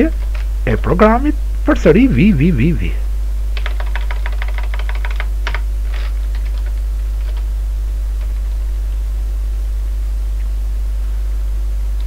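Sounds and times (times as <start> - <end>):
low electrical hum: 0.0 - 12.0
computer keyboard typing: 3.6 - 7.5.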